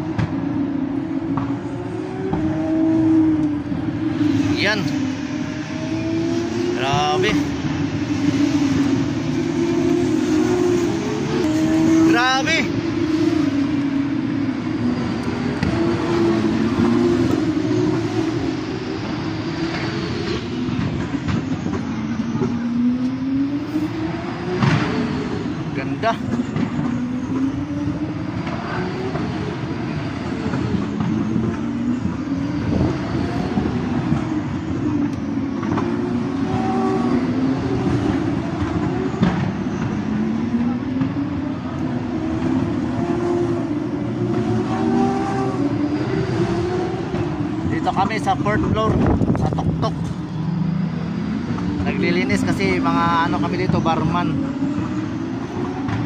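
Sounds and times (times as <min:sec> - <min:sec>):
distant racing car engines accelerating: 0:00.0 - 0:56.0.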